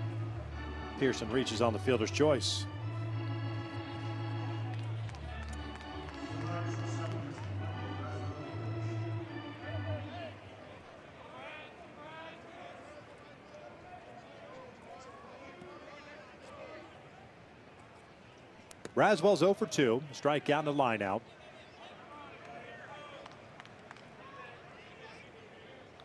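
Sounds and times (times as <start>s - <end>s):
organ playing chords: 0.0s - 10.6s
crowd murmur: 0.0s - 17.4s.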